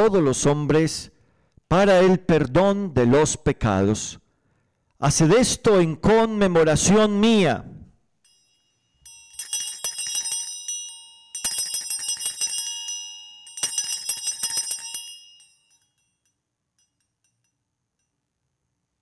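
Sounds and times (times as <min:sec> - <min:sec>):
jingling bells shaken: 0:08.3 - 0:16.1.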